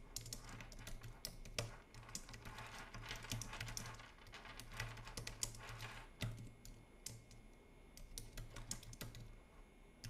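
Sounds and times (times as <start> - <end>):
typing on computer keyboard: 0.0 - 9.4.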